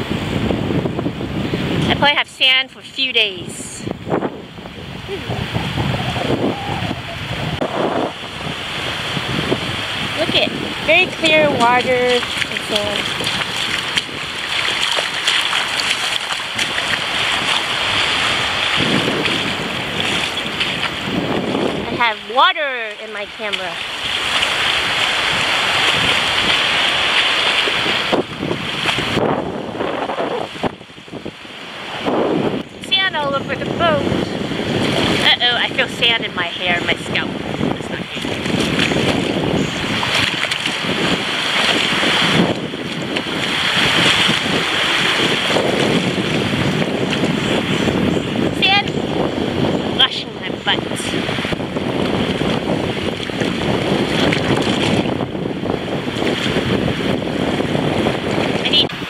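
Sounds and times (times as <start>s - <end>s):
wind buffeting microphone: 0.0s - 59.0s
small waves washing: 1.2s - 59.0s.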